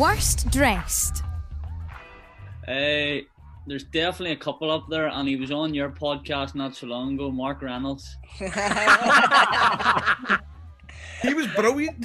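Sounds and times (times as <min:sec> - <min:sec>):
men laughing: 0:08.4 - 0:10.4, 0:11.1 - 0:11.8.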